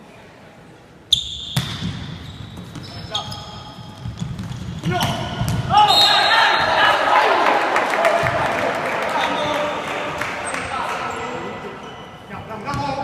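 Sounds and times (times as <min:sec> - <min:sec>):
sneaker squeaks on court: 0:01.1 - 0:06.7
volleyball hits: 0:01.4 - 0:03.0, 0:04.0 - 0:06.8
players shouting: 0:04.8 - 0:11.8
crowd cheering loudly: 0:05.7 - 0:11.6.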